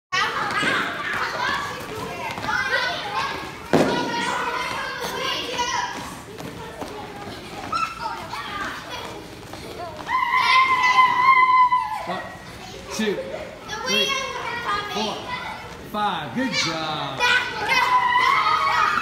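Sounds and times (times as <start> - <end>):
children shouting: 0.1 - 15.8, 16.4 - 19.0
loud thump: 3.7 - 4.2.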